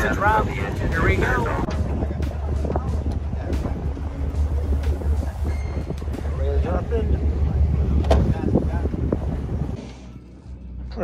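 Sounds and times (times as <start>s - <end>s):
wind on microphone: 0.0s - 9.8s
boat engine low drone: 0.0s - 11.0s
people talking in background: 0.0s - 11.0s.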